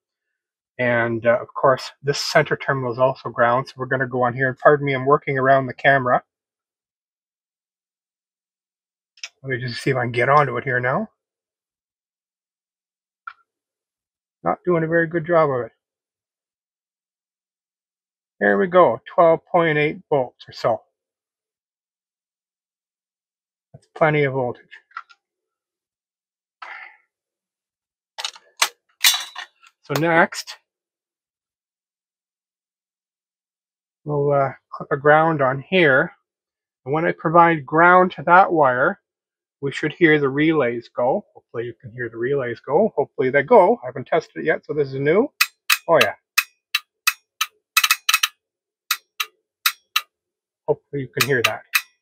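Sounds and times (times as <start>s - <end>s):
test leads and clips clicking: 45.4s - 50.1s, 51.2s - 52.0s
relays clicking: 46.8s - 48.3s.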